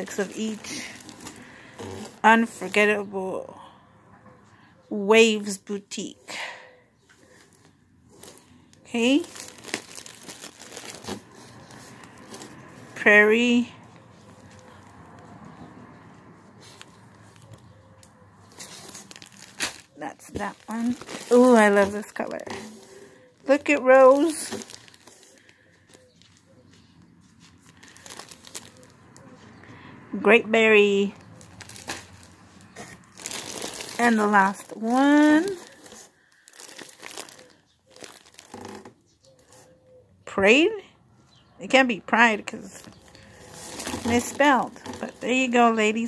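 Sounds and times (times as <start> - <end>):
plastic crinkle: 0.0 - 2.8, 7.2 - 13.0, 16.6 - 29.3, 31.1 - 39.7, 42.8 - 45.6.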